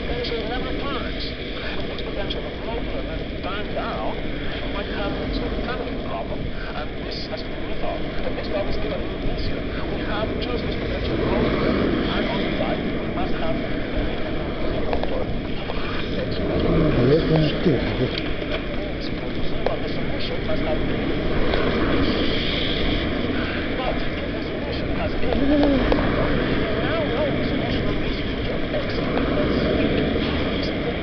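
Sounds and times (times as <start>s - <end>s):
traffic passing: 0.0s - 31.0s
wet road noise: 0.0s - 31.0s
wind rush: 0.0s - 31.0s.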